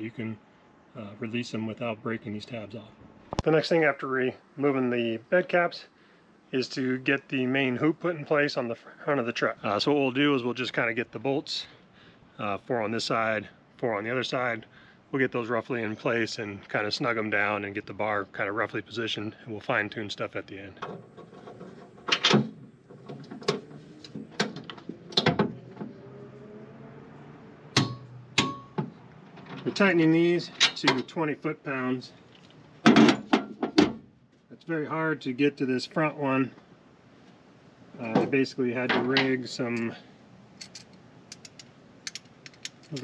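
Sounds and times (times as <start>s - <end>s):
wrench and bolts clinking on metal: 40.6s - 43.0s.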